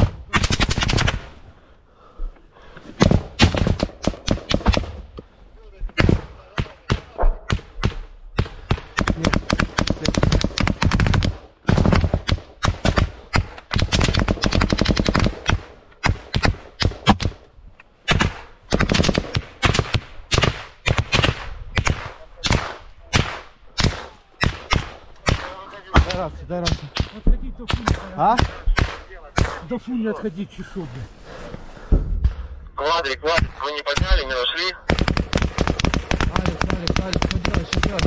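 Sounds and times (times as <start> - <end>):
automatic gunfire: 0.0 - 1.3, 8.6 - 17.4, 18.1 - 27.1, 34.9 - 38.0.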